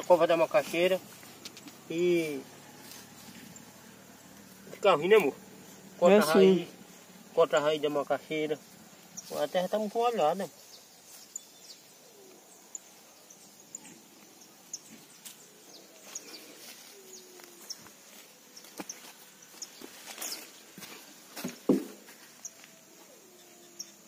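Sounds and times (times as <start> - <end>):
weeds rustling and snapping: 0.0 - 3.5
faint bird chirps: 1.1 - 20.6, 22.2 - 24.0.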